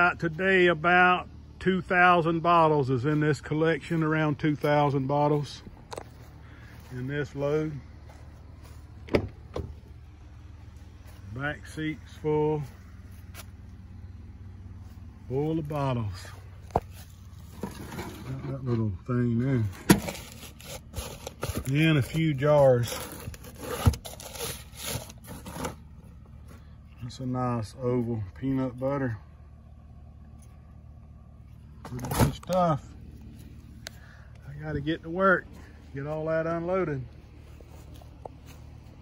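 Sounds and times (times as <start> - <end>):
newspaper and cardboard rustling: 19.7 - 26.1.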